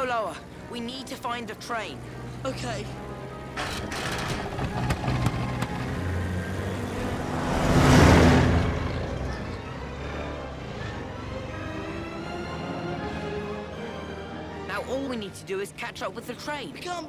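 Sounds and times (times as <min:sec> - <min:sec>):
orchestral music: 0:00.0 - 0:17.0
car engine rushing past: 0:03.7 - 0:11.0.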